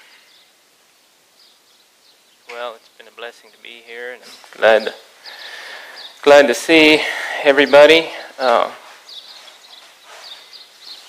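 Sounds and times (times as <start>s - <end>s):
light outdoor hiss: 0.0s - 11.0s
faint bird chirps: 4.7s - 6.2s, 7.6s - 11.0s.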